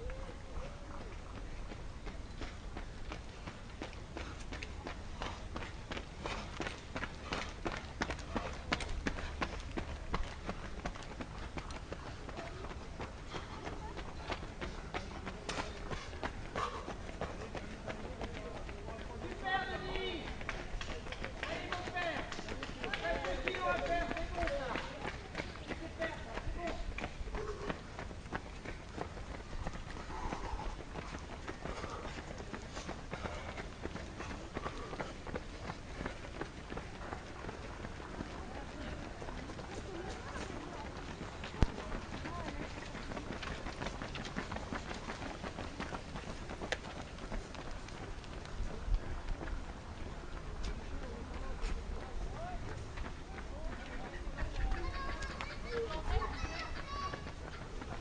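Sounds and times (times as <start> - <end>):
running footsteps on asphalt: 0.0 - 58.0
people talking: 11.5 - 27.8, 36.9 - 43.9, 50.2 - 58.0.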